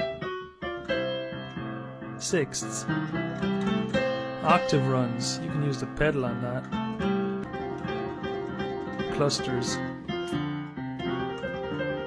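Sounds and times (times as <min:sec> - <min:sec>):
blues piano: 0:00.0 - 0:12.0.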